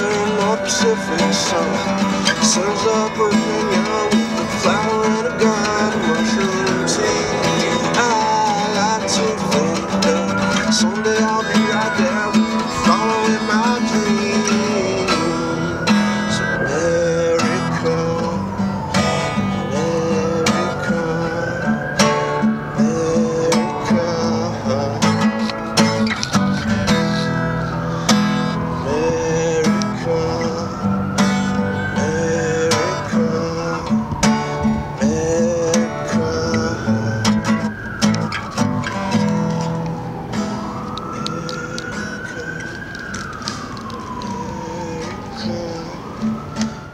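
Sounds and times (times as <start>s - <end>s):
acoustic guitar picked and strummed: 0.0s - 46.9s
higher melody line: 0.0s - 46.9s.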